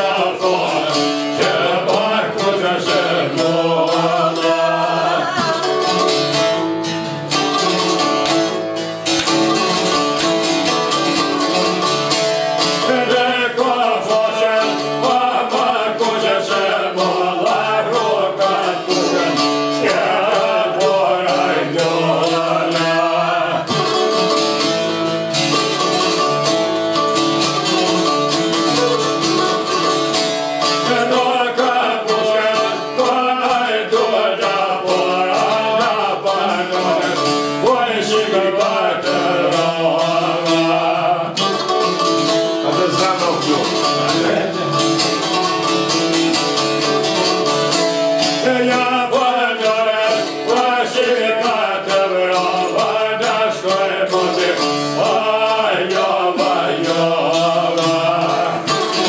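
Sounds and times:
man singing: 0.0 - 6.6, 10.6 - 26.6, 30.6 - 45.8, 46.4 - 59.0
plucked lutes: 0.0 - 59.0.

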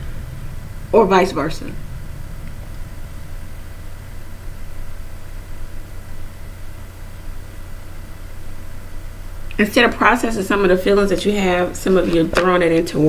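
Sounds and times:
even hiss: 0.0 - 12.0
low room hum: 0.0 - 13.0.

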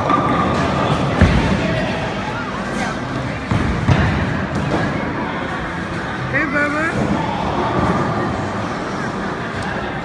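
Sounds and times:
bowling balls rumbling on lanes: 0.0 - 2.1.

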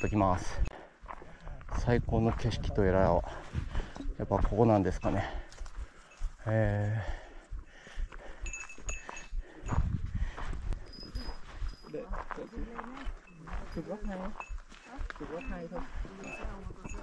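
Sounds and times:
people in conversation: 0.0 - 17.0.

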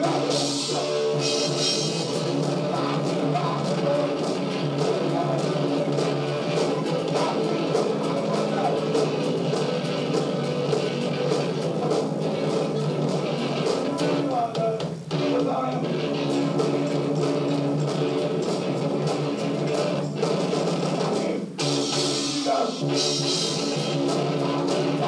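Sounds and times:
drum kit: 0.0 - 25.0
electric guitar: 0.0 - 25.0.

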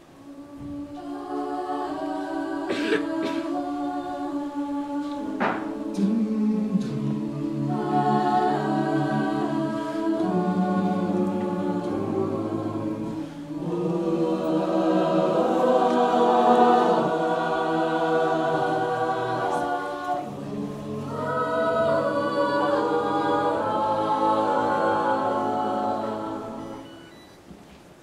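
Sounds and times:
a cappella group singing chords: 0.0 - 27.5.

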